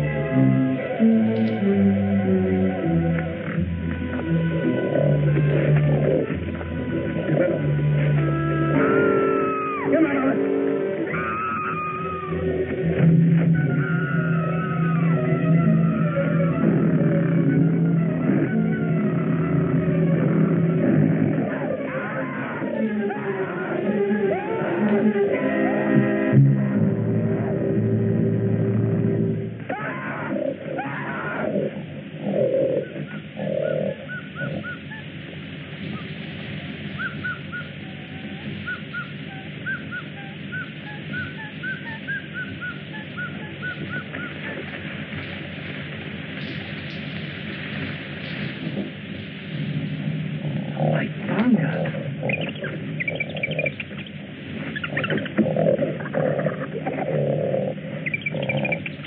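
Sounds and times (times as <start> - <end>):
wild animal calls: 0.8 - 26.2, 29.6 - 49.0, 50.4 - 59.0
bird chatter: 32.3 - 49.0, 50.8 - 57.3, 58.0 - 59.0.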